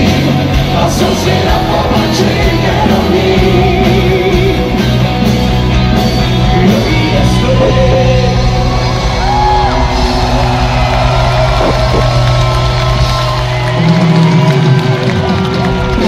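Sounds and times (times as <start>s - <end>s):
hard rock band playing live: 0.0s - 16.0s
crowd yelling: 7.7s - 16.0s.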